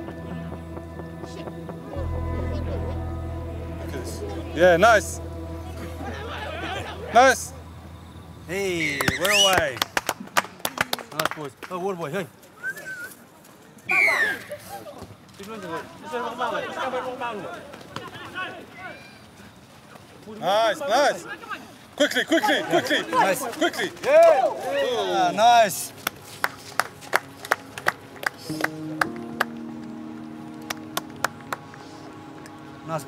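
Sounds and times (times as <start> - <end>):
music with low held notes: 0.0 - 8.9, 25.8 - 33.0
voices: 0.0 - 9.9, 10.7 - 26.9
sharp hand claps: 8.9 - 11.8, 26.0 - 29.6, 30.6 - 32.6.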